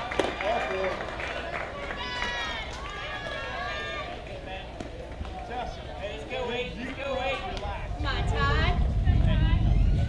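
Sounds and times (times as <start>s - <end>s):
steady low rumble: 7.7s - 10.0s.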